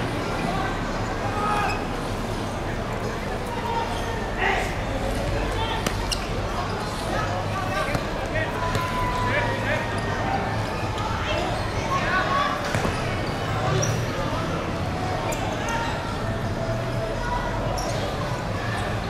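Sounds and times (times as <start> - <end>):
players shouting: 0.0 - 19.0
football kicked and bouncing: 12.6 - 13.1.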